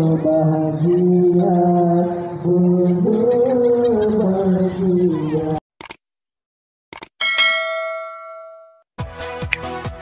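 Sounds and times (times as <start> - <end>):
bright bell ding: 7.2 - 8.8.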